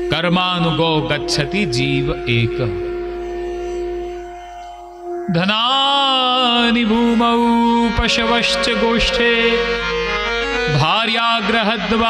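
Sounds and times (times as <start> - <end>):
held musical note drone: 0.0 - 12.0.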